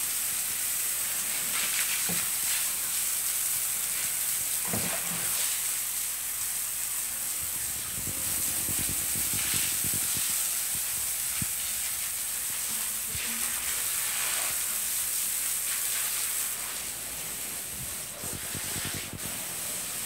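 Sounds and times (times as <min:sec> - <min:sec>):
garden hose spraying water: 0:00.0 - 0:20.0.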